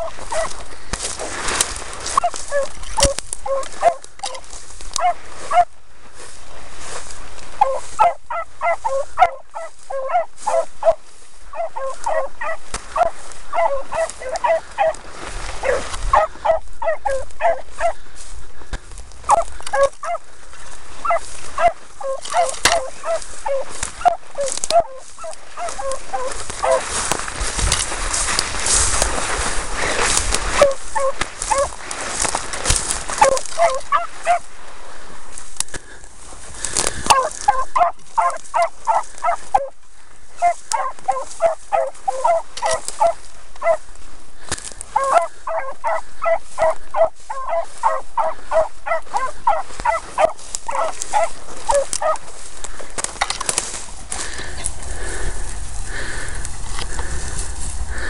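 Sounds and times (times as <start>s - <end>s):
hounds yelping: 0.0s - 5.8s, 7.5s - 18.3s, 19.2s - 34.5s, 36.7s - 43.9s, 44.8s - 57.3s
rustling of dry grass: 0.0s - 58.0s.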